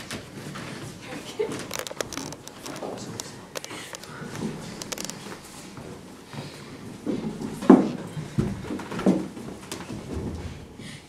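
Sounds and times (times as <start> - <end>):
people shuffling: 0.0 - 11.0.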